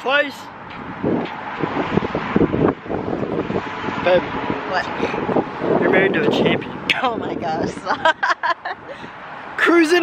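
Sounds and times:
wind buffeting microphone: 0:00.5 - 0:09.7.

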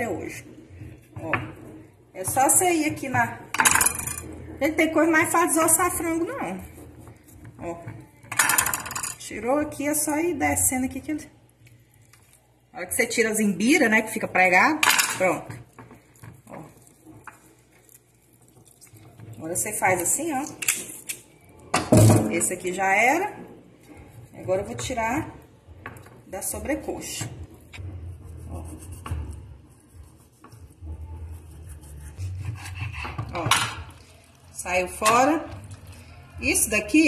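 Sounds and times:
knife scraping meat on board: 0:28.2 - 0:33.4.

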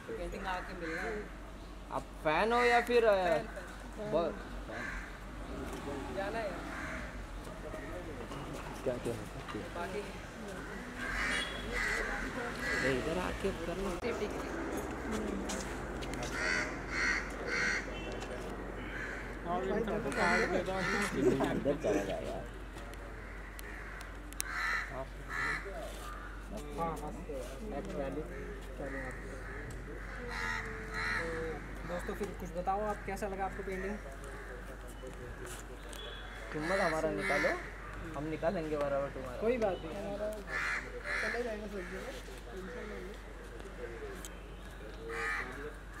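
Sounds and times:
crow cawing: 0:00.3 - 0:01.4, 0:02.4 - 0:05.2, 0:06.5 - 0:08.0, 0:10.5 - 0:13.3, 0:16.2 - 0:18.1, 0:18.8 - 0:21.4, 0:23.1 - 0:26.6, 0:28.0 - 0:34.8, 0:36.3 - 0:38.3, 0:40.4 - 0:43.2, 0:45.0 - 0:46.0
faint voices: 0:03.4 - 0:46.0
bird calling: 0:10.6 - 0:13.1, 0:16.2 - 0:18.1, 0:18.8 - 0:21.3.

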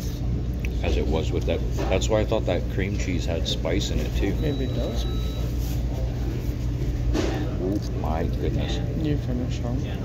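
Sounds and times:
machinery hum: 0:00.0 - 0:10.0.

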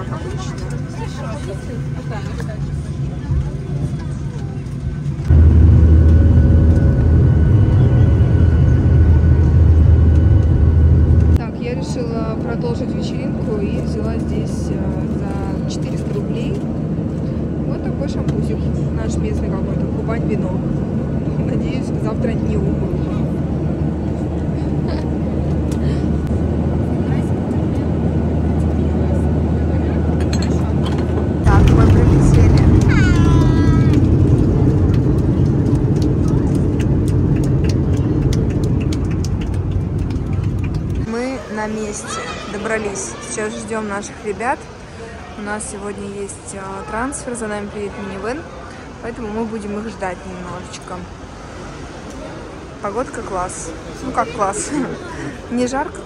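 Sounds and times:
jet engine drone in cabin: 0:00.0 - 0:41.1
passengers' voices: 0:00.0 - 0:56.0.

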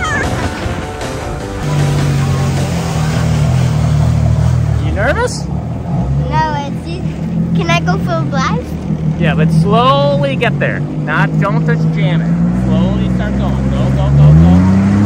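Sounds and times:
jet ski engine running: 0:00.0 - 0:15.0
child's voice: 0:06.2 - 0:08.8.

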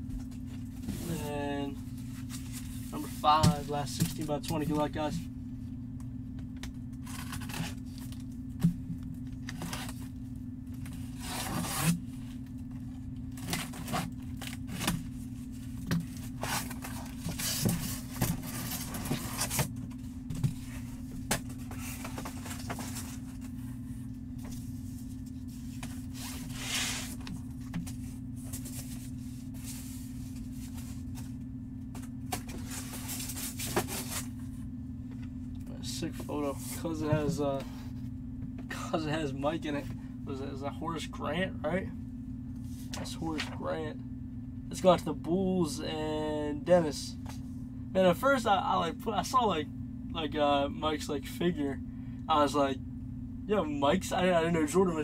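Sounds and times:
steady low hum: 0:00.0 - 0:55.0
cardboard being torn and scraped: 0:11.1 - 0:12.0.

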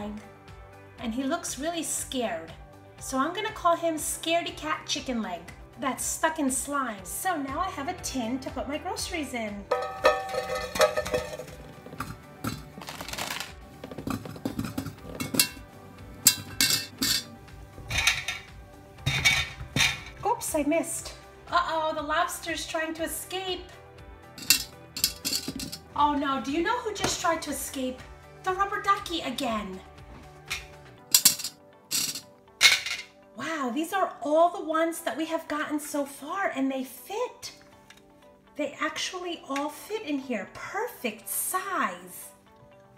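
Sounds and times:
background music: 0:00.0 - 0:42.9
plastic toys clinking in metal tin: 0:12.5 - 0:13.6, 0:16.3 - 0:17.3, 0:24.4 - 0:25.9, 0:30.5 - 0:33.1
plastic toys clinking in tin can: 0:12.5 - 0:13.6, 0:31.2 - 0:33.1.

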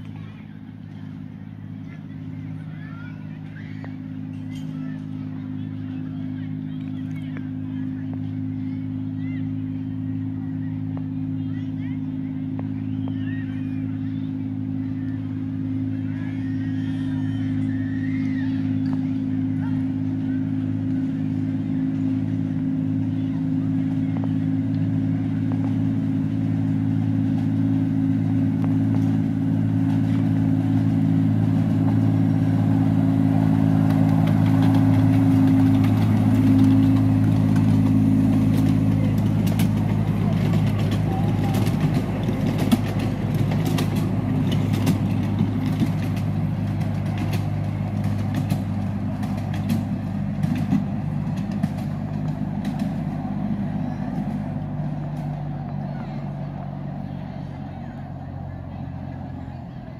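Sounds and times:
coaches clicking on track: 0:00.0 - 0:59.9
miniature diesel locomotive engine: 0:00.0 - 0:59.9.

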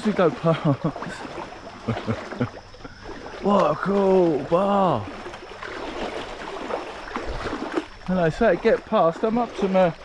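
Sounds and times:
water splashing around wading legs: 0:00.0 - 0:10.0.

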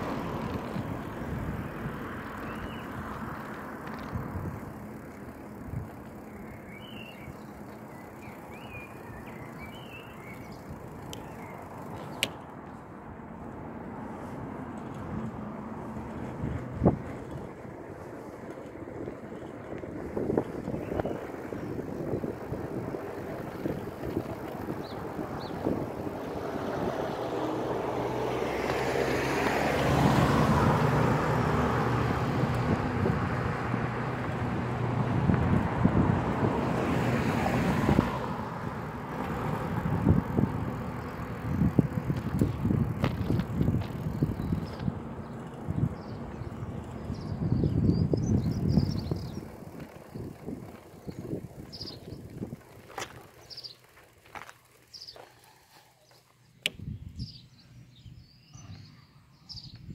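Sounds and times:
car passing: 0:00.0 - 0:56.0
bicycle rattling over road: 0:00.0 - 0:57.4
wind on microphone: 0:19.9 - 0:27.6, 0:30.0 - 0:38.3, 0:39.0 - 0:53.2, 0:56.7 - 0:57.5.

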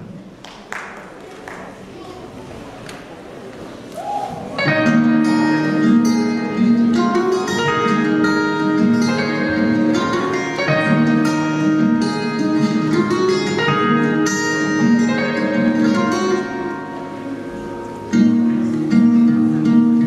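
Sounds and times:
instrumental backing track over speakers: 0:04.5 - 0:20.0.

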